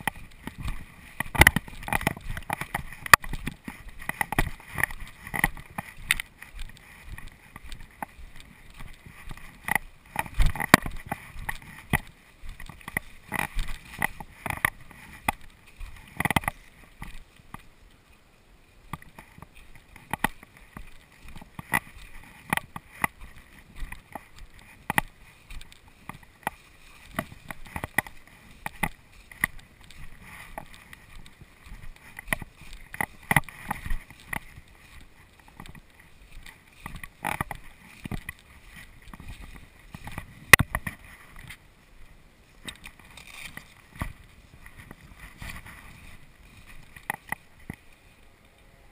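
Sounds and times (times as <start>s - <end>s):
footsteps through tall grass: 0.0s - 48.9s.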